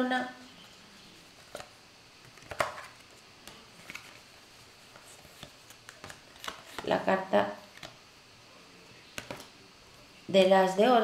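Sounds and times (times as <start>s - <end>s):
cards tapping and clicking: 1.4s - 4.2s, 4.9s - 7.0s, 9.1s - 9.5s.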